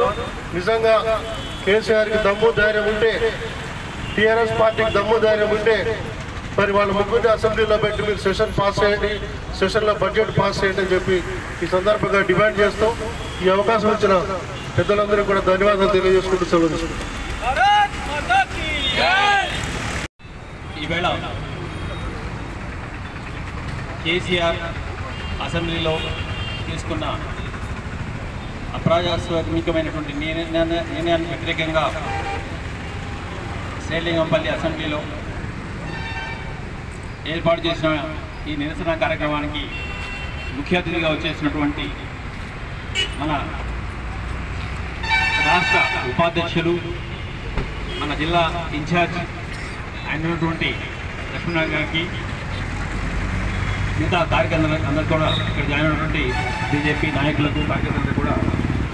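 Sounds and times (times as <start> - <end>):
man speaking into microphone: 0.0 - 19.6, 20.7 - 21.5, 24.0 - 24.8, 25.4 - 27.5, 28.7 - 32.3, 33.8 - 35.4, 37.2 - 39.8, 40.6 - 42.1, 43.0 - 43.7, 45.4 - 47.0, 47.9 - 52.4, 53.9 - 58.7
low rumble of road traffic: 0.0 - 58.9.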